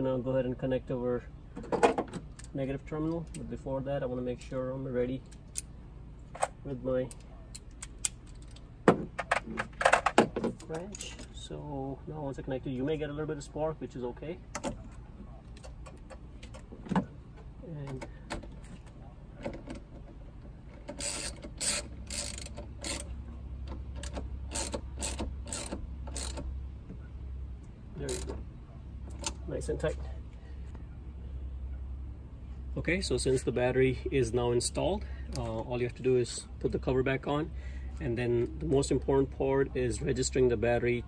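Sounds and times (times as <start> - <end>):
ratchet wrench clicking: 20.9 - 23.1, 24.0 - 26.4.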